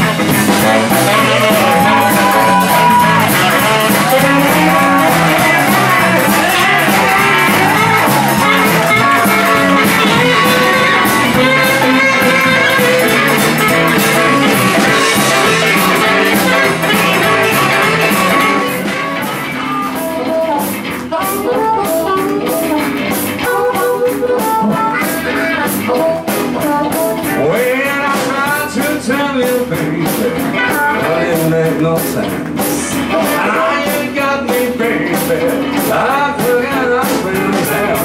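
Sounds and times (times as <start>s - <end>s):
tenor saxophone solo: 0.0s - 27.3s
harmonica bending notes: 0.0s - 27.8s
guitar accompaniment: 0.0s - 38.0s.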